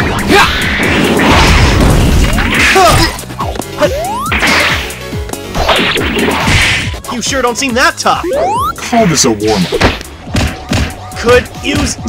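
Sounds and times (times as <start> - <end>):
action music: 0.0 - 12.0.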